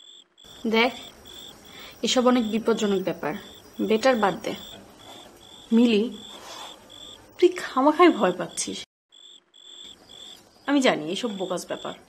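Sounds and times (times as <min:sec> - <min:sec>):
cricket chirping: 0:00.0 - 0:12.0
woman's voice: 0:00.6 - 0:01.0, 0:01.9 - 0:04.6, 0:05.7 - 0:06.2, 0:07.4 - 0:08.9, 0:10.7 - 0:12.0.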